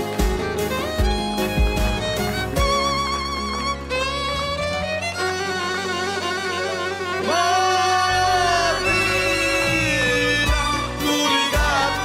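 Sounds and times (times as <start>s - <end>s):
backing track: 0.0s - 12.0s
bass: 0.0s - 12.0s
violin melody with vibrato: 0.0s - 12.0s.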